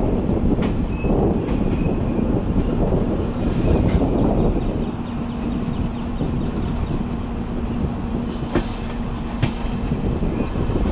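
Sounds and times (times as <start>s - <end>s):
train wheels rumbling on track: 0.0s - 10.9s.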